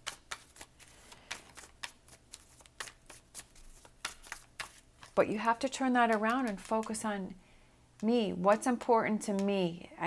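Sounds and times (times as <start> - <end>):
cards snapping and flicking: 0.0 - 5.2.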